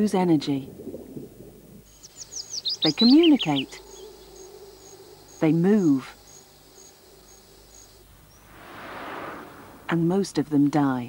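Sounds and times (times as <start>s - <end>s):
songbird chirping: 1.8s - 11.0s.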